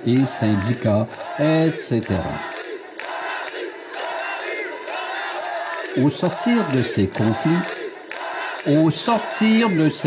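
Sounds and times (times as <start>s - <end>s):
crowd chanting and shouting: 0.0s - 10.0s.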